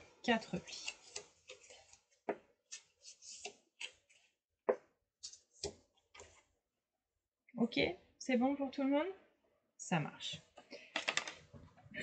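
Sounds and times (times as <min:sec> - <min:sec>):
cardstock rustling: 0:00.7 - 0:04.3.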